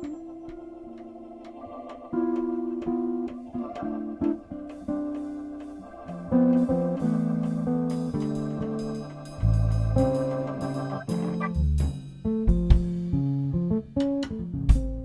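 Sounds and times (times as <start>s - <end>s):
organ chords: 0.0s - 12.0s
electric bass notes: 0.0s - 15.0s
drum and cymbal hits: 4.2s - 13.2s.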